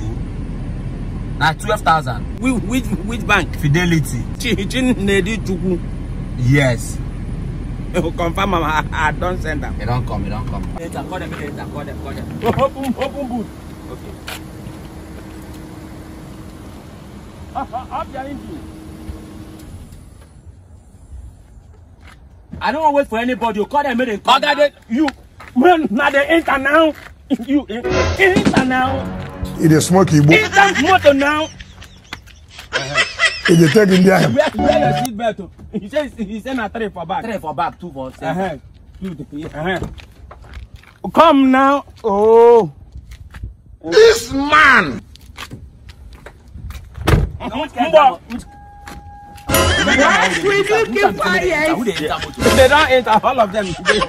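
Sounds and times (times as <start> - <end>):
low vehicle rumble: 0.0 - 22.6, 27.8 - 33.4
steady single-pitched tone: 48.3 - 49.8.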